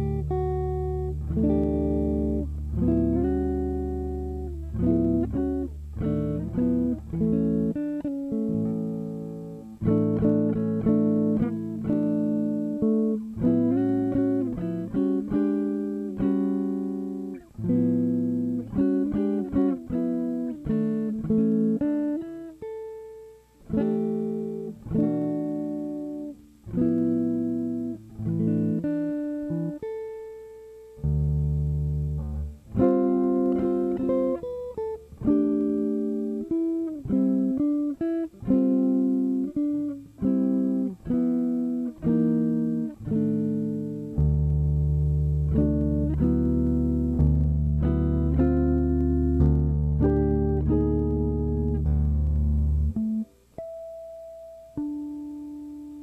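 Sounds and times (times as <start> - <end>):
electric guitar chords and melody: 0.0 - 56.0.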